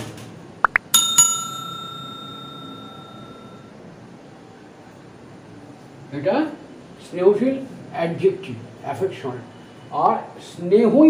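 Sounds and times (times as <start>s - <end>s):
bell ringing: 0.7s - 3.7s.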